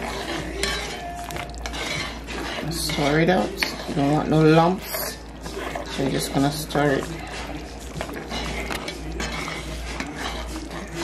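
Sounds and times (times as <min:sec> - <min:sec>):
metal spoon scraping pot: 0:00.0 - 0:11.0
spoon clinking on pot: 0:00.0 - 0:11.0.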